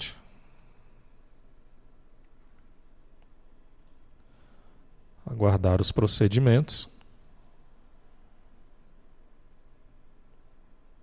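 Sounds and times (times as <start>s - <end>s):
low room hiss: 0.0s - 11.0s
faint computer mouse clicks: 2.2s - 4.0s.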